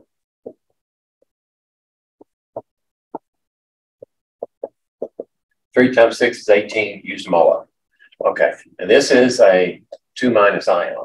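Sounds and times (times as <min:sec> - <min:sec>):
marker tapping on whiteboard: 0:04.4 - 0:05.3.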